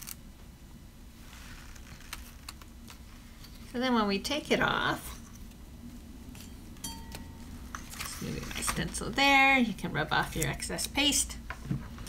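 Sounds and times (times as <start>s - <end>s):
hand handling plastic stencil: 6.3s - 9.2s.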